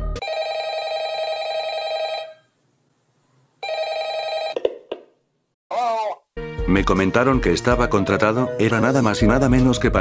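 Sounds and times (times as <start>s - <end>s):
telephone bell ringing: 0.2s - 2.5s, 3.6s - 4.6s.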